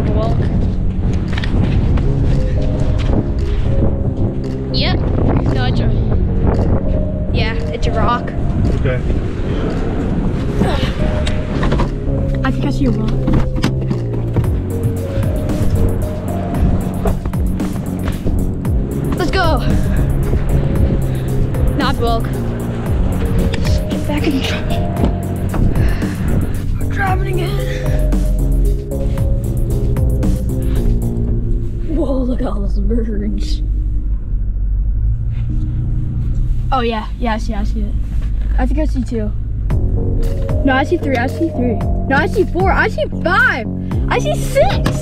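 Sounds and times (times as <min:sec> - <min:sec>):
background music with held chords: 0:00.0 - 0:34.4, 0:39.5 - 0:45.0.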